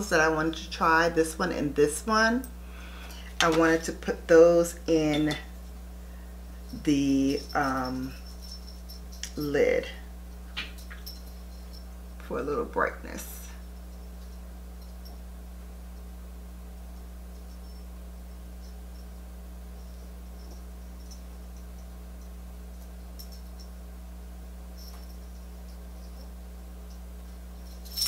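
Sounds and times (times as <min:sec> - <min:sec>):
low electrical hum: 0:00.0 - 0:28.0.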